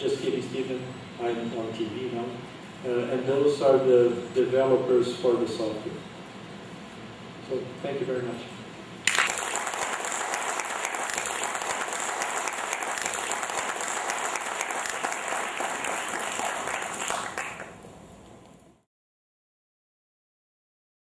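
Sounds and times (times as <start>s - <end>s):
audience applauding: 9.1s - 17.9s.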